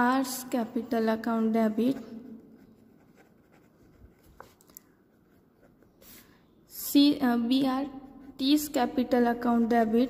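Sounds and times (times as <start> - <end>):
pen writing on paper: 1.8 - 4.6.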